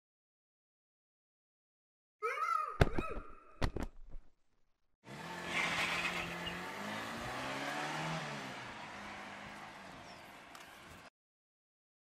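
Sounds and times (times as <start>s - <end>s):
cartoon car engine revving: 5.1s - 11.0s.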